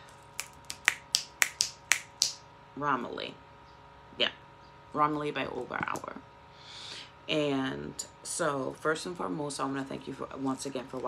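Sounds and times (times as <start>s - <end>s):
fingers snapping: 0.4s - 2.4s.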